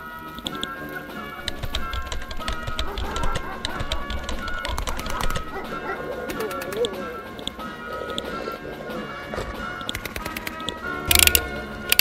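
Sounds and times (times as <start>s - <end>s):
background music sustained tones: 0.0s - 12.0s
keyboard key clicks: 0.4s - 0.7s, 1.4s - 8.3s, 9.8s - 12.0s.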